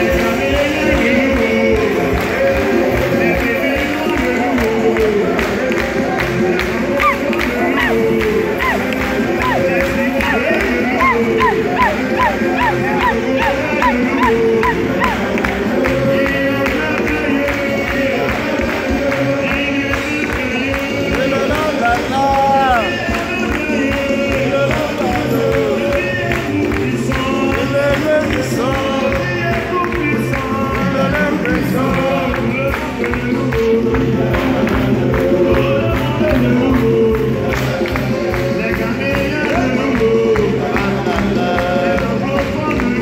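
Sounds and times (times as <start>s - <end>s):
choir singing: 0.0s - 23.0s
congregation singing along: 0.0s - 43.0s.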